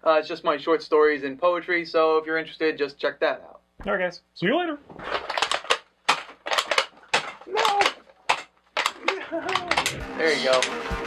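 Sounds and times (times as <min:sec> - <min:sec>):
hard plastic toy clacks and rattles: 0:05.1 - 0:10.8.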